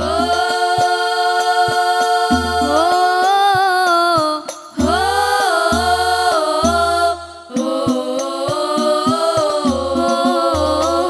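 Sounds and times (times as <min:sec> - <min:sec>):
girls singing in unison: 0:00.0 - 0:11.0.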